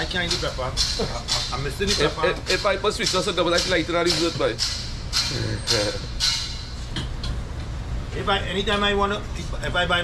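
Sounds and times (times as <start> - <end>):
man laughing: 1.0 - 1.3.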